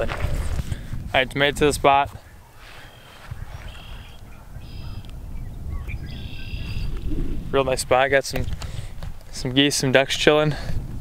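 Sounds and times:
short high bird calls: 2.3s - 5.1s, 5.8s - 7.1s
faint wavering bird call: 2.5s - 5.1s, 5.8s - 6.9s
low rumble: 4.2s - 8.0s.

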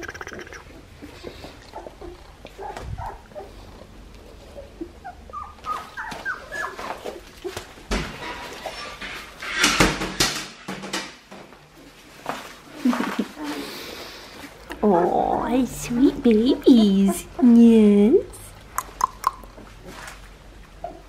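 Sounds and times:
puppies squeaking and whimpering: 0.0s - 10.2s, 14.9s - 18.1s, 18.8s - 21.0s.

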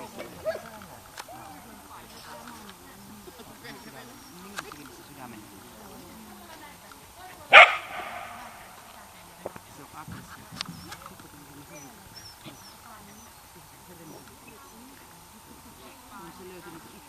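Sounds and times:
dog barking: 0.0s - 0.8s, 7.5s - 8.8s
faint voices: 0.0s - 17.0s
light clicks: 4.4s - 5.0s.

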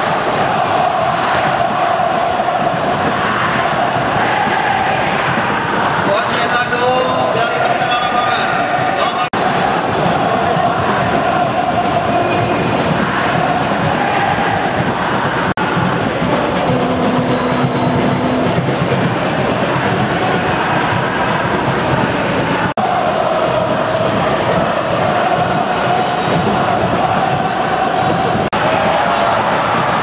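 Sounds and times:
stadium crowd singing: 0.0s - 30.0s.

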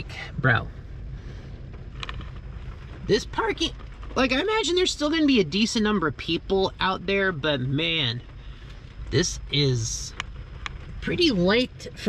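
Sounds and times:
car cabin rumble and hiss: 0.0s - 12.0s.

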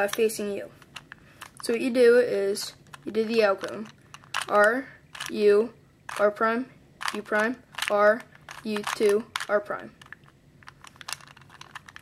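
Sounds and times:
puzzle cube clicking: 2.6s - 5.4s, 6.1s - 6.4s, 7.0s - 12.0s.

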